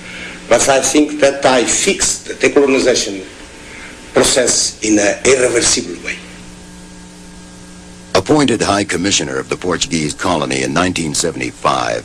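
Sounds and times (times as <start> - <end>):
electrical hum with hiss: 0.0 - 12.0
man's voice: 4.2 - 6.2.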